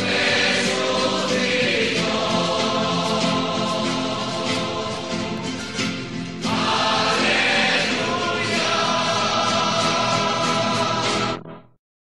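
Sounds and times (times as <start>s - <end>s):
choir singing held chords: 0.0s - 11.6s.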